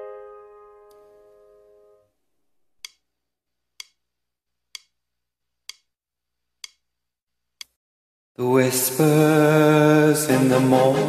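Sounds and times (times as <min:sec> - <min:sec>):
sharp clicks in slow beat: 0:03.8 - 0:04.0, 0:04.7 - 0:05.0, 0:05.7 - 0:05.9.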